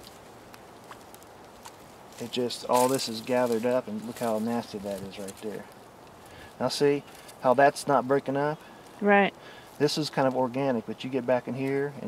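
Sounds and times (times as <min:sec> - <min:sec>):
steady background hiss: 0:00.0 - 0:12.0
twigs crackling underfoot: 0:00.0 - 0:12.0.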